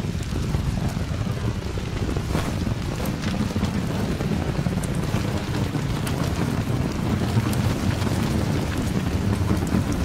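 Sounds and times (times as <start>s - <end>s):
low rumble of thunder: 0.0s - 10.0s
sharp raindrop ticks: 0.0s - 10.0s
steady rain: 0.0s - 10.0s.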